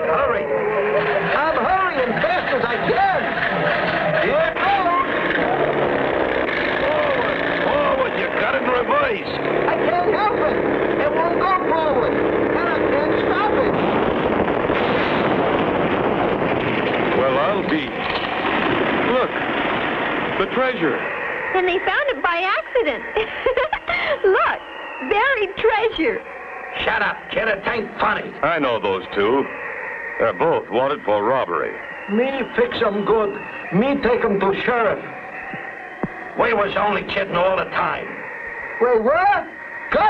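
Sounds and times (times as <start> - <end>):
people whooping and yelling: 0.0 - 9.2, 20.6 - 40.0
truck engine running: 0.0 - 40.0.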